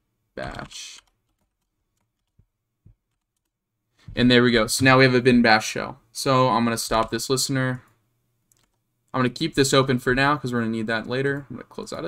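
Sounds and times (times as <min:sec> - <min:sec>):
faint keyboard keystrokes: 0:08.5 - 0:08.8.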